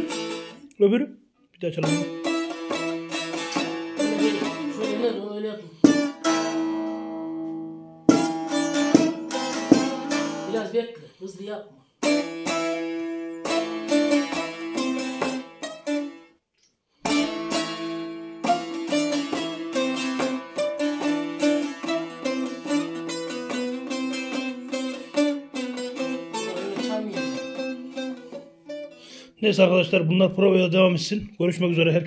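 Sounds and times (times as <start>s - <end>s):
long-necked lute plucked notes: 0.0s - 0.6s, 1.8s - 10.8s, 12.0s - 16.3s, 17.0s - 29.1s.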